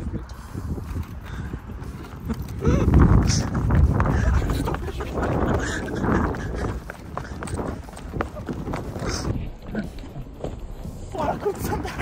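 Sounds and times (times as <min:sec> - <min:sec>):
running footsteps on sand: 0:00.0 - 0:12.0
wind rumbling on microphone: 0:00.0 - 0:12.0.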